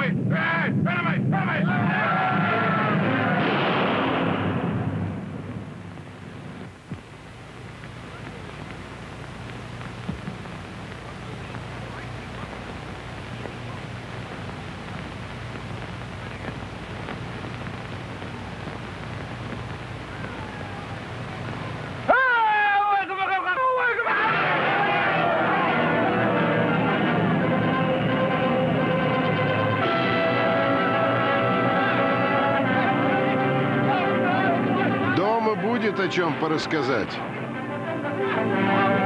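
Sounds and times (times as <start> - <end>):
voices: 0.0 - 3.5, 6.4 - 27.2, 31.0 - 39.0
low rumble with hiss: 0.0 - 22.2
faint clicks: 6.0 - 22.0.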